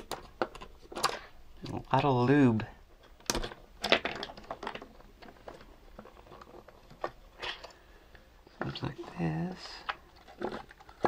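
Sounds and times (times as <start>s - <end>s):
hard plastic clicks and scrapes: 8.6s - 11.0s.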